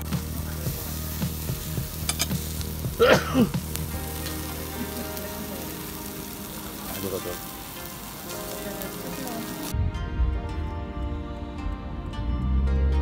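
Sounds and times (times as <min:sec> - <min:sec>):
meat sizzling on a grill: 0:00.0 - 0:09.7
soft music: 0:00.0 - 0:13.0.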